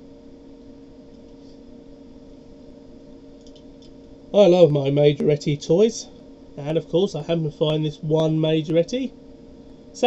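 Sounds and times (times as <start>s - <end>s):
low electrical hum: 0.0s - 10.0s
faint clicks of objects handled: 3.4s - 4.2s.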